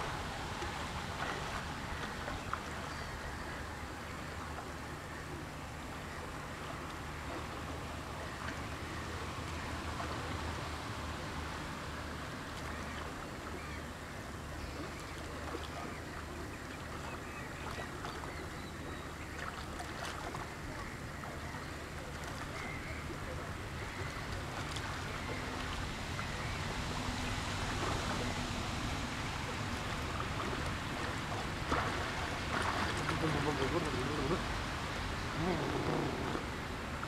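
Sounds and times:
swimmer splashing: 21.9 - 37.0
waves lapping on rocky shore: 22.4 - 37.0.

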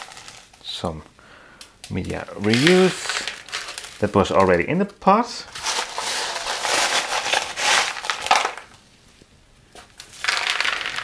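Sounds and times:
stones crunching and rattling: 2.1 - 4.2, 5.5 - 8.7, 10.1 - 11.0.

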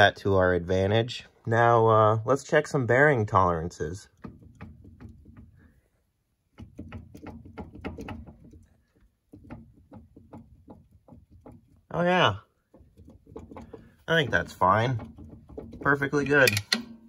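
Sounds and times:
metal clicks and clunks: 6.5 - 11.9, 12.6 - 17.0.

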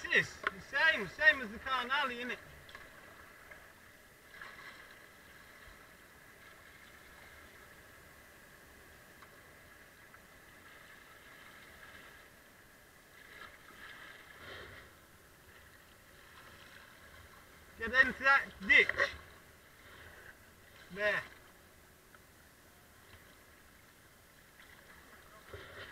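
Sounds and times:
water moving along hull: 0.0 - 25.9
paddle blades dipping in water: 0.2 - 7.7, 13.0 - 22.2, 23.0 - 25.9.

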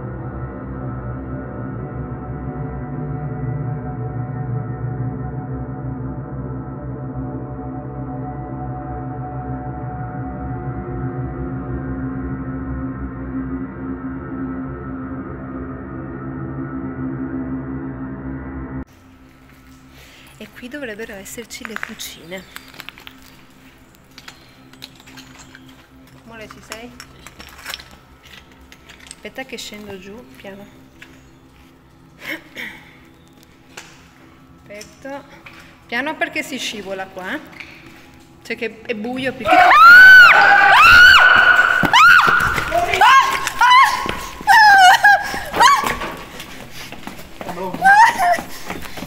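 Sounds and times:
person screaming: 39.5 - 46.0, 47.7 - 48.4
footsteps on a hard floor: 41.3 - 49.0.

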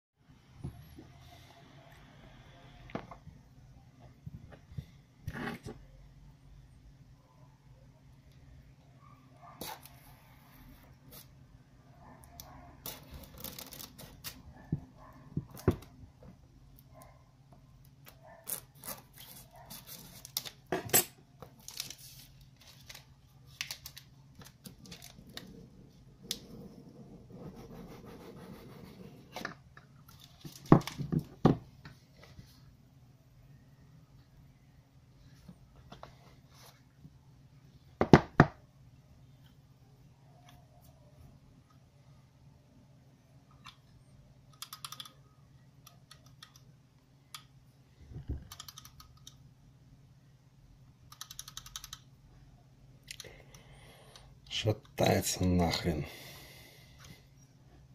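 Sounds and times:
cellophane wrap crinkling: 21.5 - 25.5
rapid small clicks: 44.5 - 45.2, 48.4 - 49.4, 51.1 - 52.1.

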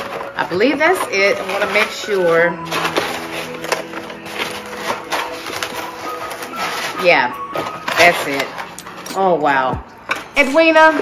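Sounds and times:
background music sustained chord: 0.0 - 11.0
hands rustling cardboard packaging: 0.0 - 11.0.

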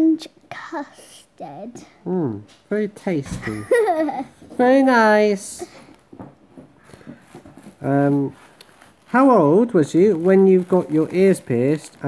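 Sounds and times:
man saying um: 2.0 - 2.4
faint clicks and rustles: 5.6 - 12.0.

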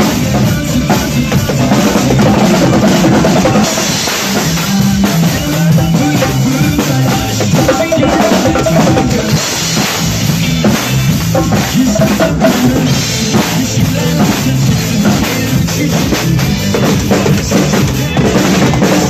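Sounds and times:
backing track with bass line: 0.0 - 19.0
drum kit rock groove: 0.0 - 19.0.

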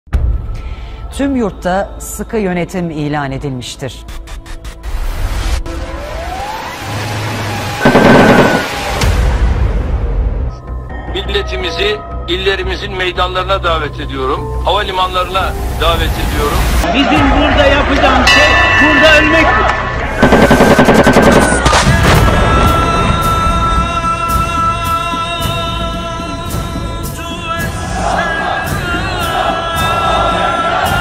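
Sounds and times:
background music: 0.1 - 31.0
rising siren-like wail: 5.7 - 9.0
automatic gunfire: 7.8 - 8.7, 20.2 - 21.7.

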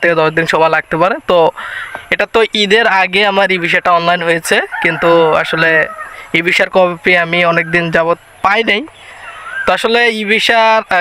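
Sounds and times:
man talking: 0.0 - 11.0
rooster crowing: 4.7 - 6.3.

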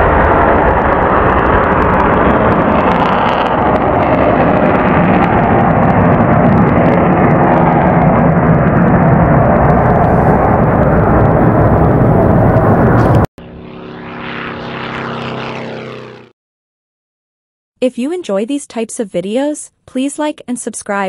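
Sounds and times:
jet engines roaring: 0.0 - 16.3.

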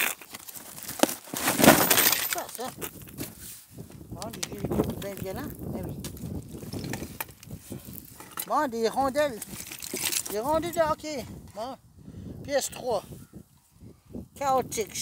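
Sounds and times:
hard objects clattering: 0.0 - 3.3, 4.2 - 8.7, 9.3 - 10.6.

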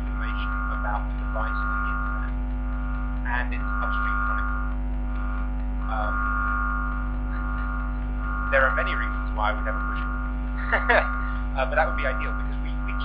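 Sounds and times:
electrical hum and buzz: 0.0 - 13.0
faint indistinct voices: 3.3 - 4.6, 5.9 - 6.2, 8.5 - 13.0.

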